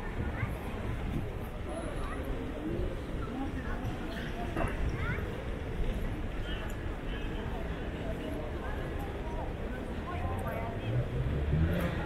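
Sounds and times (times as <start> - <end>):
faint voices of passers-by: 0.0 - 12.0.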